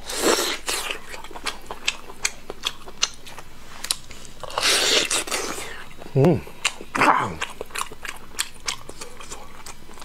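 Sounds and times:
wet chewing clicks and smacks: 0.8 - 4.4, 6.0 - 10.0.

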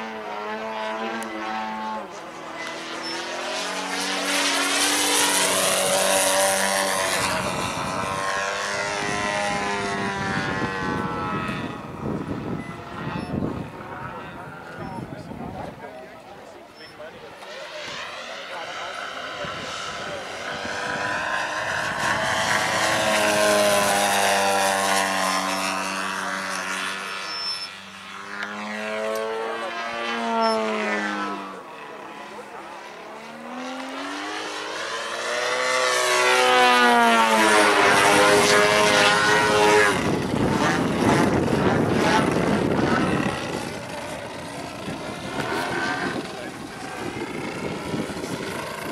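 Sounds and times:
model plane engine and propeller: 0.0 - 48.9.

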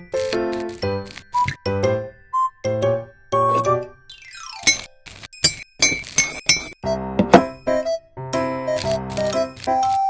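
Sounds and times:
background music: 0.0 - 4.8, 6.8 - 10.0.

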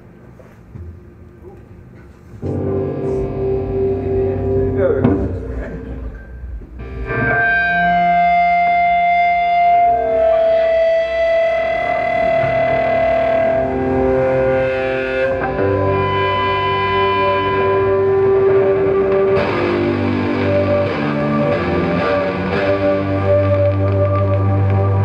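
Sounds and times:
distorted electric guitars: 2.4 - 25.0.

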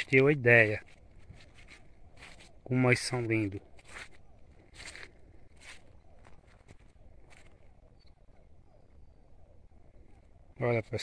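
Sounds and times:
footsteps: 0.0 - 7.7.

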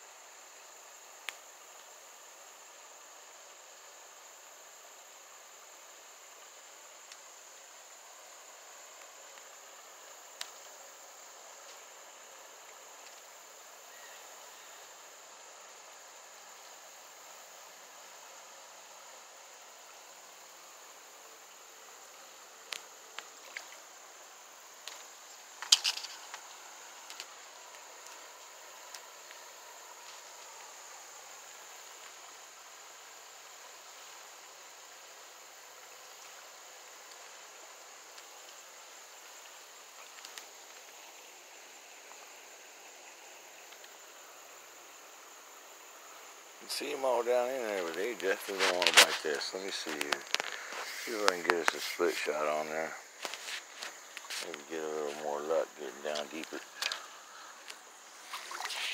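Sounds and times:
insect chorus: 0.0 - 58.9.

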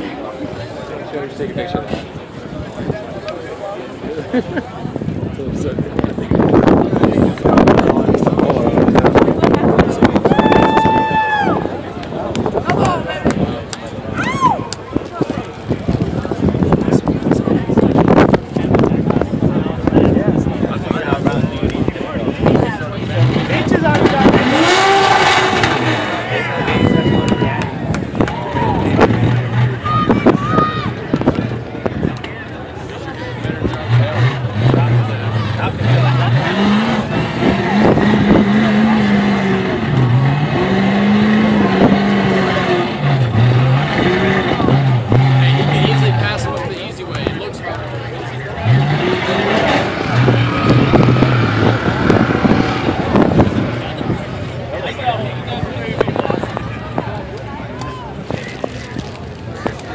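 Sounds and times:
race car engine revving: 15.6 - 59.9.

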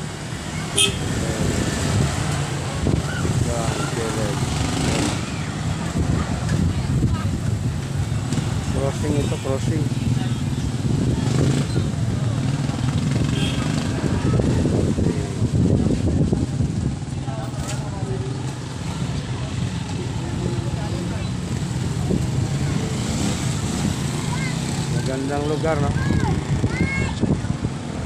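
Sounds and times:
low traffic rumble: 0.0 - 28.0
motorcycles passing: 0.0 - 28.0.

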